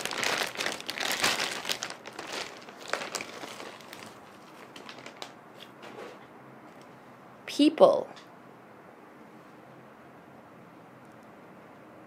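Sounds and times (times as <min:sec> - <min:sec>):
plastic wrapping crinkling: 0:00.0 - 0:05.8.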